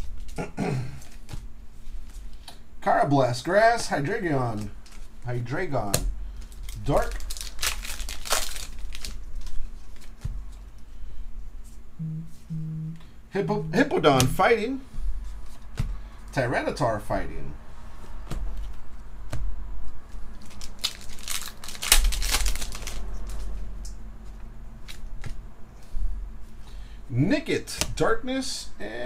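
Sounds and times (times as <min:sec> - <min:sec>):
foil wrapper crinkling and tearing: 0:06.4 - 0:10.3, 0:20.3 - 0:23.5.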